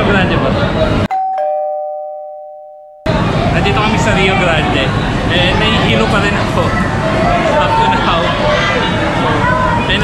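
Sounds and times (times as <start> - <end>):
two-note ding-dong chime: 1.1 - 3.1.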